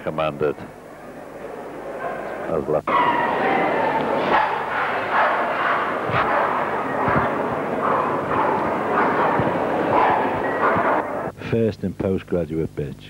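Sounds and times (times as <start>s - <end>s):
background din of hall: 0.0s - 11.4s
dogs barking: 0.1s - 11.3s.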